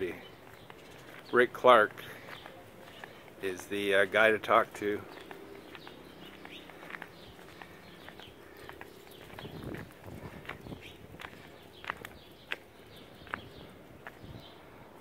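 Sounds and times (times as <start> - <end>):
footsteps on brick and paving: 0.0 - 15.0.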